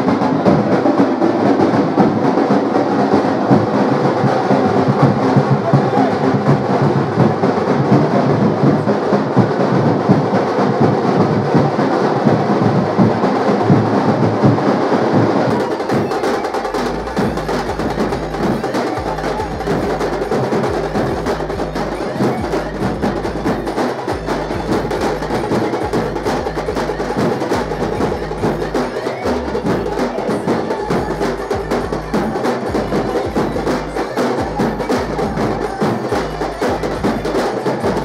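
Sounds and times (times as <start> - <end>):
fast percussion music: 0.0 - 38.0.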